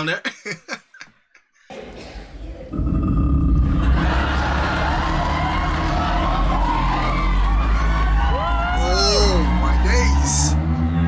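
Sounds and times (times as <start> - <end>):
bass singer holding deep note: 2.7 - 6.8
audience cheering and whooping: 3.6 - 11.0.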